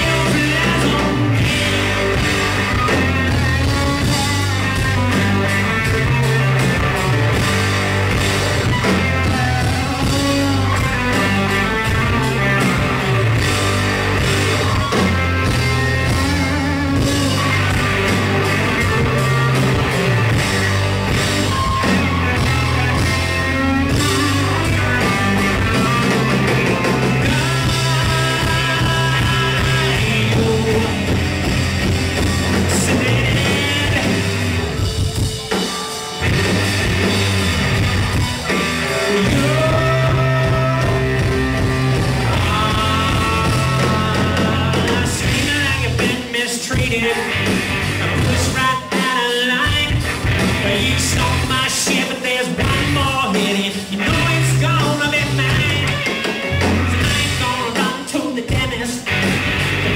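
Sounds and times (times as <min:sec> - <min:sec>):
rock band playing live: 0:00.0 - 0:59.9.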